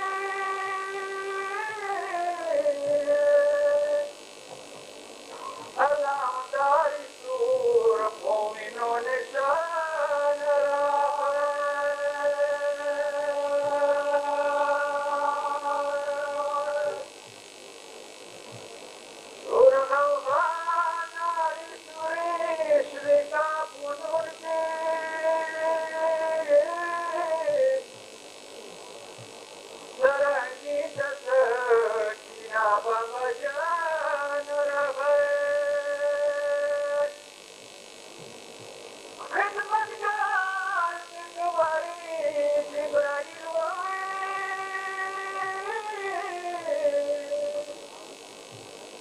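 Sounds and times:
background hiss: 0.0 - 49.0.

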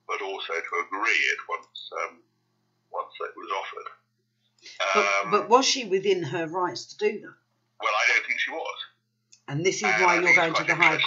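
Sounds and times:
person speaking: 4.6 - 6.0, 9.4 - 11.0.

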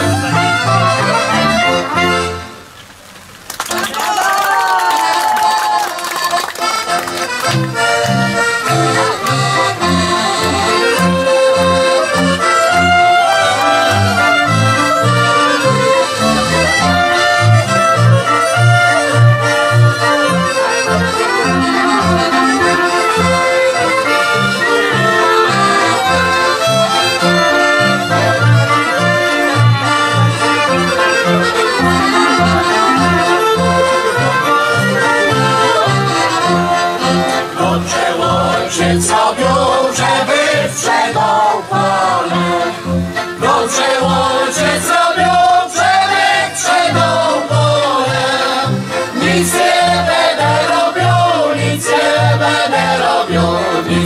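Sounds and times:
double bass beat: 0.0 - 2.5, 6.6 - 54.0
accordion: 0.0 - 54.0
fiddles: 0.0 - 54.0.

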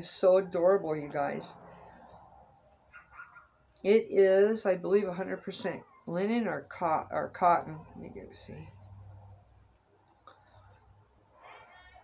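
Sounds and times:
woman speaking: 0.0 - 1.6, 3.8 - 8.8.

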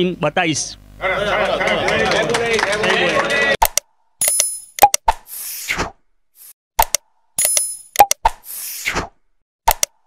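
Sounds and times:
sharp mouse-like clicks: 6.8 - 8.4, 9.7 - 10.0.

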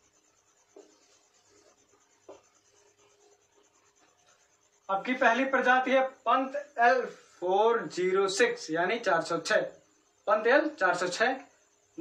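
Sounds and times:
marker squeaking on whiteboard: 0.0 - 4.8.

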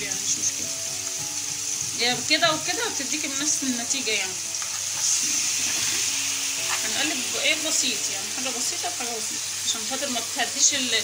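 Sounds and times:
liver sizzling in hot oil: 0.0 - 11.0
spoon stirring in pan: 4.5 - 6.9.

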